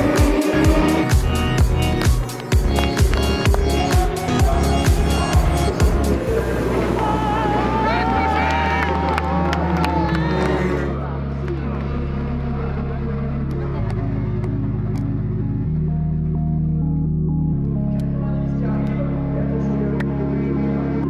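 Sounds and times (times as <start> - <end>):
race track background noise: 0.0 - 16.3
slow ambient music: 0.0 - 21.0
team cheering and shouting: 3.0 - 11.5.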